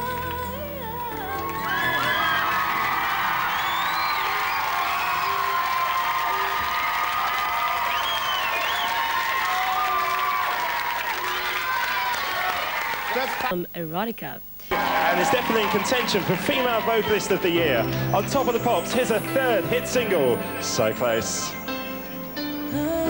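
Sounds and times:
audience applauding: 1.2s - 13.6s, 14.7s - 21.6s
whoops and whistles: 1.5s - 10.0s.

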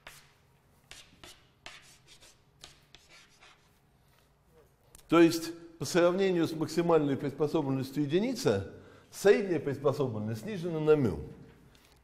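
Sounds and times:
chalk writing on chalkboard: 0.0s - 4.3s.

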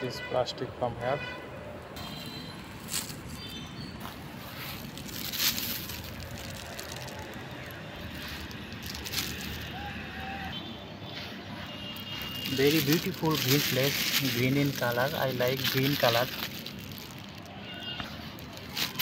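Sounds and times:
plastic bag rustling: 2.6s - 9.9s, 11.9s - 19.0s.

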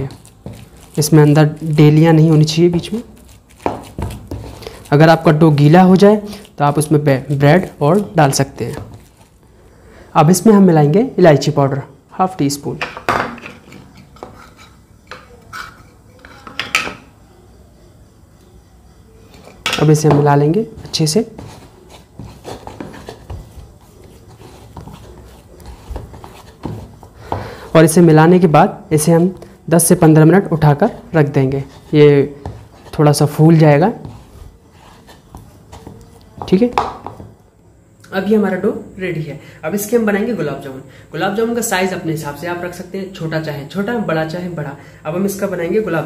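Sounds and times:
hands kneading dough: 0.0s - 9.5s, 19.2s - 37.5s.

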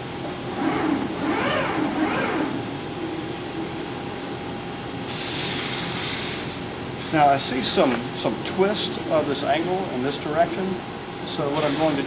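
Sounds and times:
bending machine droning: 0.0s - 12.0s
hiss: 11.6s - 12.0s.

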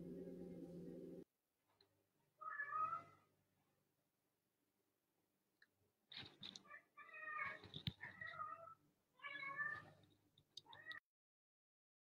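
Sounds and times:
cat meowing: 2.4s - 3.3s, 6.6s - 10.0s.

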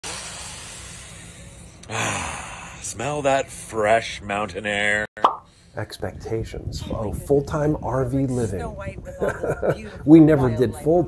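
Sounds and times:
man breathing in deeply: 0.0s - 2.9s
man sighing: 1.8s - 2.8s.

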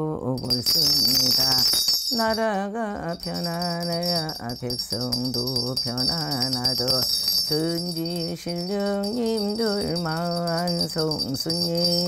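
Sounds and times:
woman chanting: 0.0s - 12.0s
small bells jingling: 0.3s - 12.0s.

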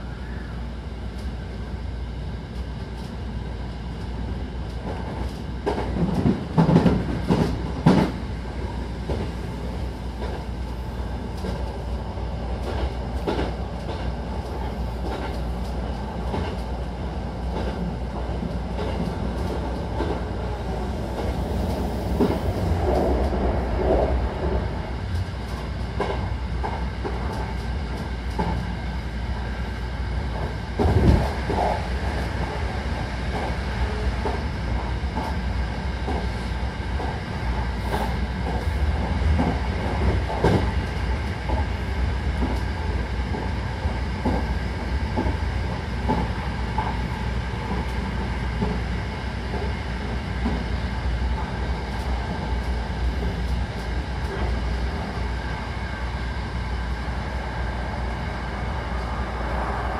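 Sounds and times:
train rumble: 0.0s - 59.9s.

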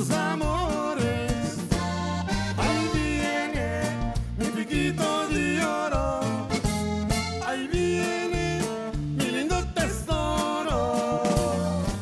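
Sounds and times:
button accordion melody: 0.0s - 9.4s
steady bass notes: 0.0s - 12.0s.

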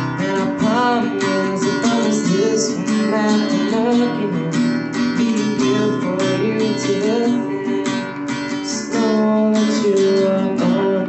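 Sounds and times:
acoustic guitar strumming: 0.0s - 11.0s.

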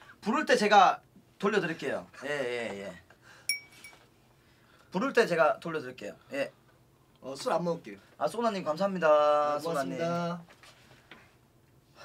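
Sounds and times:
glass clinking: 3.5s - 4.0s.

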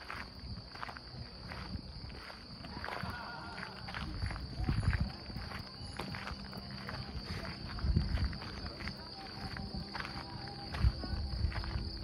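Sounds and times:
footsteps outdoors: 0.0s - 12.0s.

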